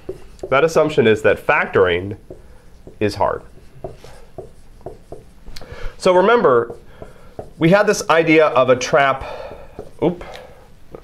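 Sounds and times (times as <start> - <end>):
marker pen writing on whiteboard: 0.0 - 1.1, 1.7 - 10.3.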